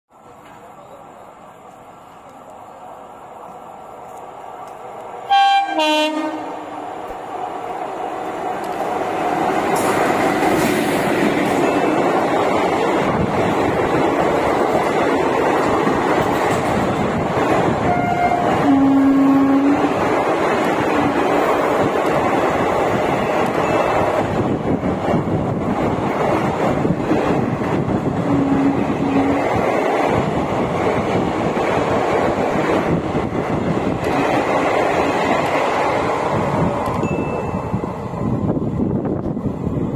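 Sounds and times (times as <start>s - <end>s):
train rushing past on rails: 0.1s - 39.9s.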